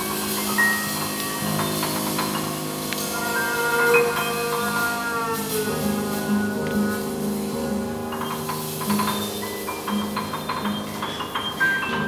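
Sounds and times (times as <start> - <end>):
jazz piano trio playing: 0.0 - 12.0.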